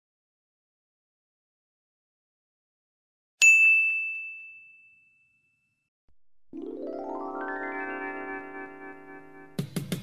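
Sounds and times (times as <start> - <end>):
high bell-like ding: 3.4 - 5.8.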